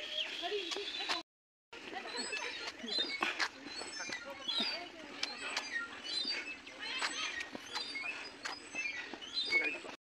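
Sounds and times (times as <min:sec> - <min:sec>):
birds chirping: 0:00.0 - 0:01.2, 0:01.8 - 0:10.0.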